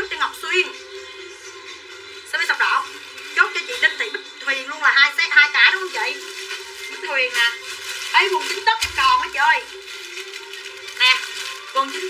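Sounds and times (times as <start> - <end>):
background music with held tone: 0.0 - 12.0.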